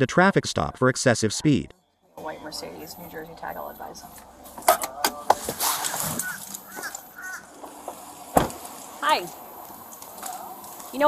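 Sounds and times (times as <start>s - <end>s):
bird call: 5.7s - 7.5s.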